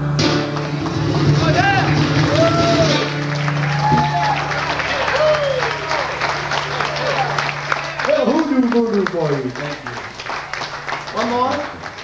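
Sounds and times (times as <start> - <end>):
scattered clapping: 0.2 - 12.0
audience whooping and cheering: 0.6 - 12.0
resonator guitar chord ringing: 6.0 - 9.5.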